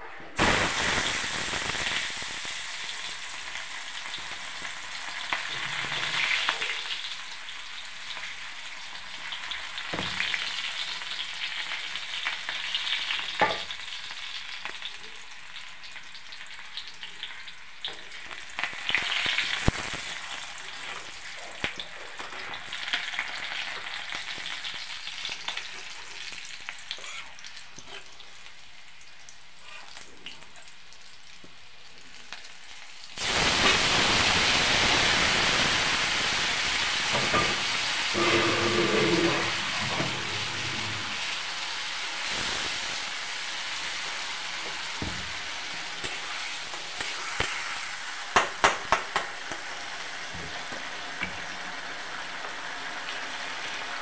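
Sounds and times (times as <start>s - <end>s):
hot oil sizzling: 0.3s - 54.0s.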